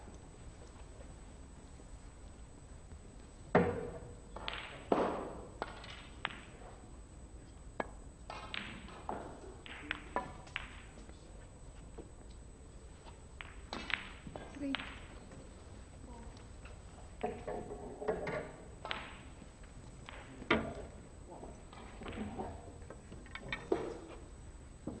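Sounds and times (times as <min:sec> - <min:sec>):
snooker balls clicking: 0:02.3 - 0:11.1, 0:11.9 - 0:25.0.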